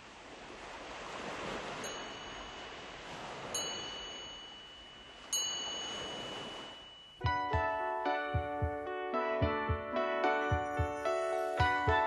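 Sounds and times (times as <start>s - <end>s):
soft surf-like noise wash: 0.0s - 7.2s
ringing chime strikes: 1.9s - 2.8s, 3.6s - 7.3s.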